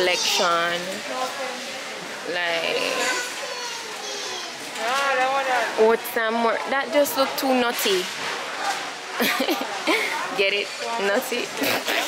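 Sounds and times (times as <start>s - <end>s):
high child-like voice: 3.0s - 4.6s.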